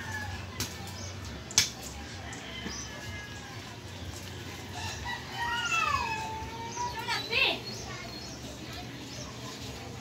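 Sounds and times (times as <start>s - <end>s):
rooster crowing: 4.7s - 6.3s.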